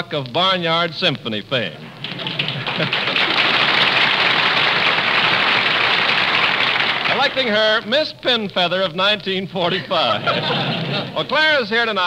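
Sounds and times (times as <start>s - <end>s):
audience laughing: 1.8s - 7.1s, 9.7s - 11.3s
audience applauding: 1.8s - 7.6s.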